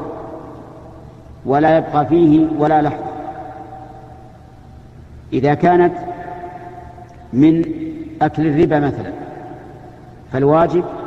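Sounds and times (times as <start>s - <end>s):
man speaking with echo: 0.0s - 4.4s, 5.3s - 11.0s
steady low hum: 0.0s - 11.0s.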